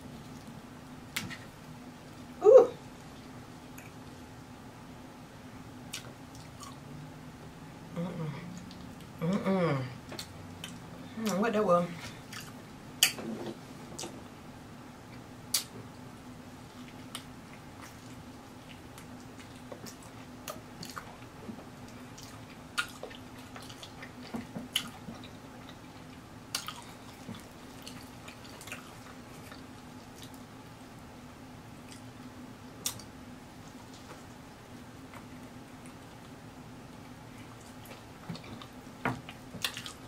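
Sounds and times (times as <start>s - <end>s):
faint steady hum: 0.0s - 40.0s
close chewing with mouth smacks: 5.9s - 6.8s, 12.2s - 13.2s, 16.8s - 30.5s, 31.8s - 32.2s, 32.8s - 34.4s, 37.0s - 40.0s.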